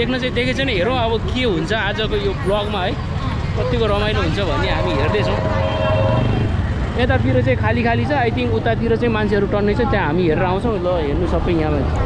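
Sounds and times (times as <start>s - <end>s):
motorcycles passing: 0.0s - 12.0s
steady tone: 4.1s - 7.0s.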